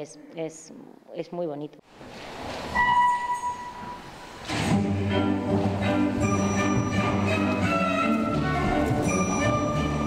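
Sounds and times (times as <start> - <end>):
orchestral music with strings: 4.5 - 10.0
held high note: 6.2 - 8.4.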